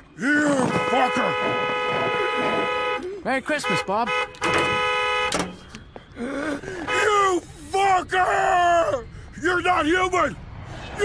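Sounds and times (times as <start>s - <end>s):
car horn honking: 0.6s - 6.0s, 6.8s - 7.2s.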